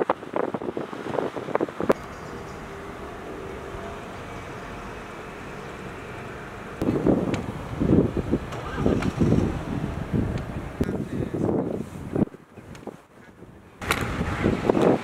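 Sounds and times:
distant traffic hum: 0:00.0 - 0:15.0
wind buffeting microphone: 0:00.0 - 0:15.0.

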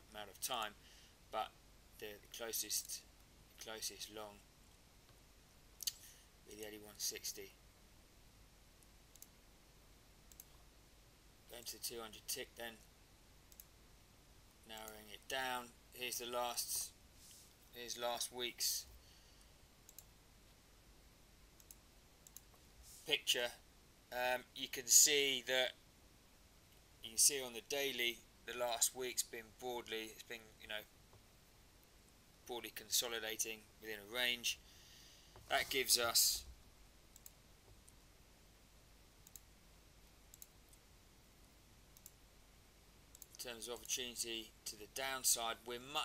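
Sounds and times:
faint computer mouse clicks: 0:08.8 - 0:09.4, 0:10.3 - 0:10.6, 0:13.5 - 0:13.7, 0:19.9 - 0:20.1, 0:21.6 - 0:22.6, 0:37.1 - 0:38.0, 0:39.2 - 0:39.5, 0:40.3 - 0:40.8, 0:42.0 - 0:42.2, 0:43.1 - 0:44.0.

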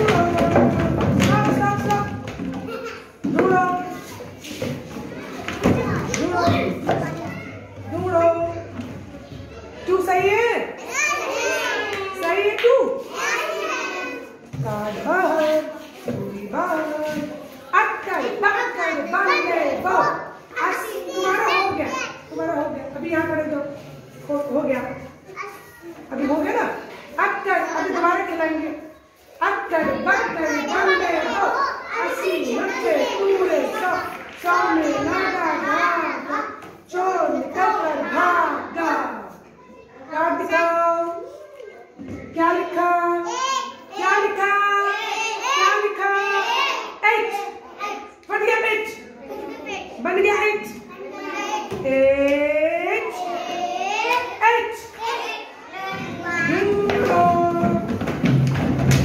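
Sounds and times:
young children chattering: 0:00.0 - 0:59.0.

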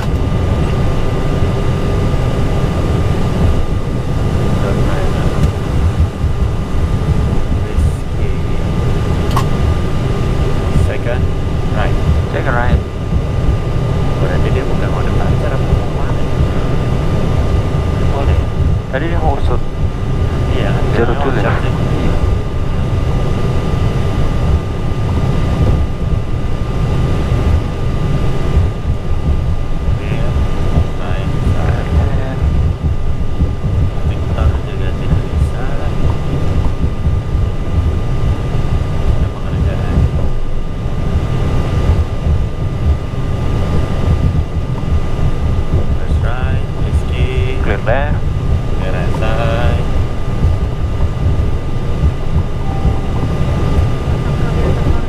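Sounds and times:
low engine rumble: 0:00.0 - 0:55.0
thin constant whine: 0:00.0 - 0:55.0.

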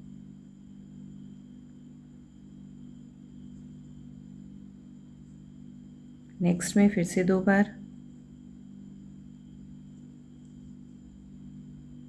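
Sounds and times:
faint high whine: 0:00.0 - 0:12.0
low hum: 0:01.0 - 0:12.0.

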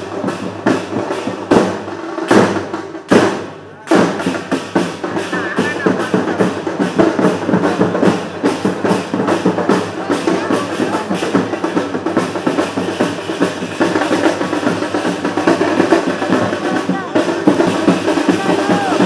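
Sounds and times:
crowd voices: 0:00.0 - 0:19.0
fast drum beat: 0:00.0 - 0:19.0.

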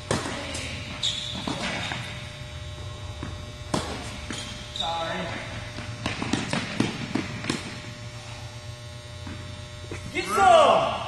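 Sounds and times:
low hall hum: 0:00.0 - 0:11.0
tennis ball hits and bounces: 0:05.8 - 0:07.7.

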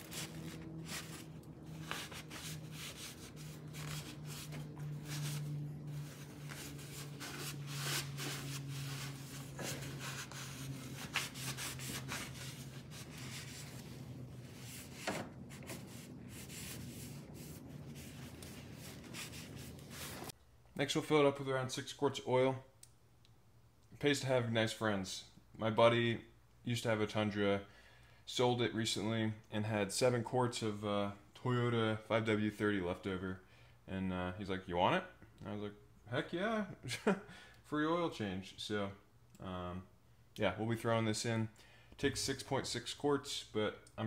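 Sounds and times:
paper towel wiping metal: 0:00.0 - 0:20.3
low steady hum: 0:00.0 - 0:44.0.

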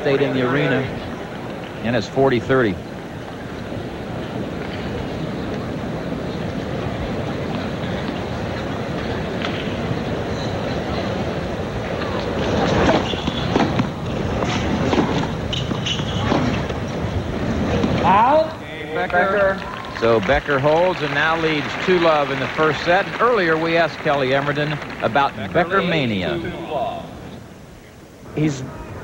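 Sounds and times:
crowd murmur: 0:00.0 - 0:29.0.

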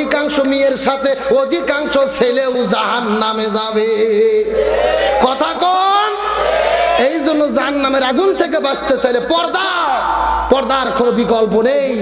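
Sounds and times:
man chanting through microphone: 0:00.0 - 0:04.6.

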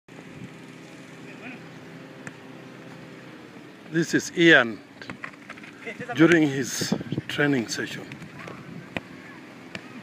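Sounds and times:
outdoor background hiss: 0:00.1 - 0:10.0
faint distant voices: 0:03.8 - 0:10.0.

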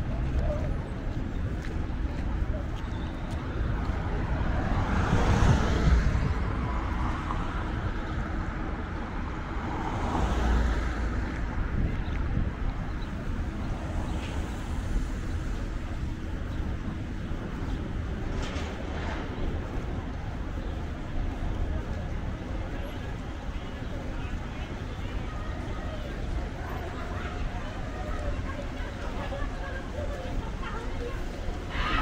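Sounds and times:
road noise: 0:00.0 - 0:32.0
vehicles passing: 0:00.0 - 0:32.0.

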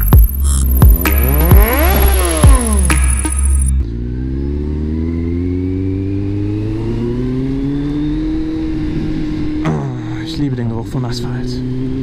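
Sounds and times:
intro music: 0:00.0 - 0:04.2
motorcycle engine accelerating: 0:00.0 - 0:12.0.

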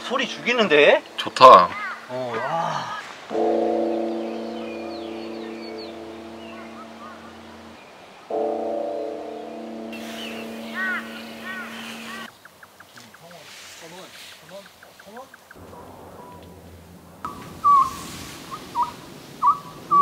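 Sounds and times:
deep temple bell ringing: 0:03.3 - 0:12.3
small birds chirping: 0:03.8 - 0:08.5, 0:09.2 - 0:15.7.

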